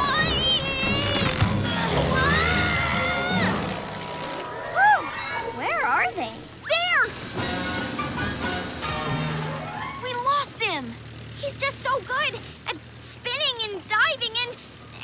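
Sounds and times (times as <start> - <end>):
low steady drone: 0.0 - 10.0
long rising tone: 0.8 - 6.6.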